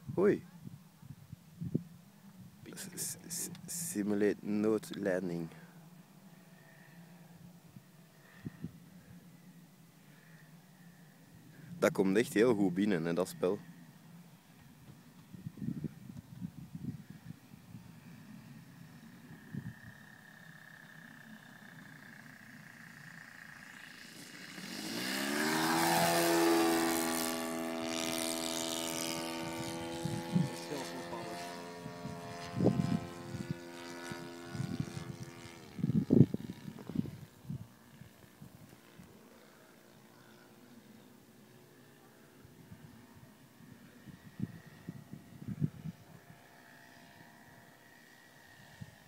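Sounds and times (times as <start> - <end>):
model plane engine passing: 2.7 - 49.0.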